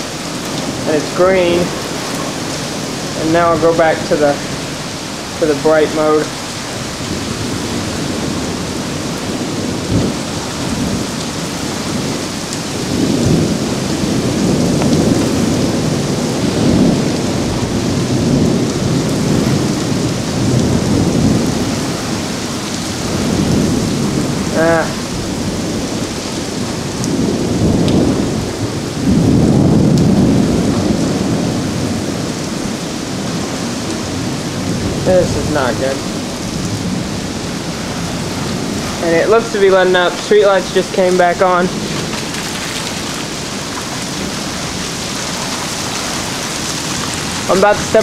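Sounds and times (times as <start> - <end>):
heavy rain pouring: 0.0 - 48.0
thunder rumbling: 0.0 - 48.0.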